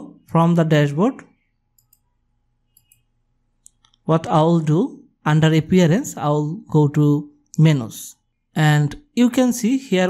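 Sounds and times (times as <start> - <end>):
faint computer mouse clicks: 1.7 - 2.1, 2.7 - 4.0.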